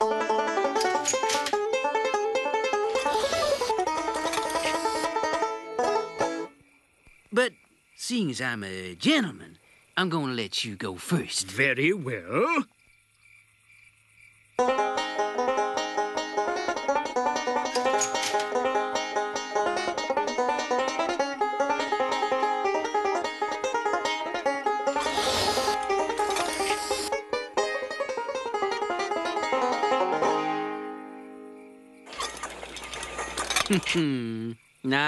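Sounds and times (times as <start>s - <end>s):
banjo picking: 0.0s - 6.6s, 14.6s - 31.5s
bursts of hiss: 25.0s - 27.2s.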